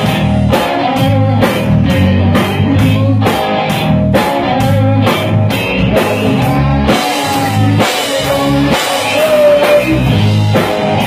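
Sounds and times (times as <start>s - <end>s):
bass guitar: 0.0s - 11.0s
electric guitars: 0.0s - 11.0s.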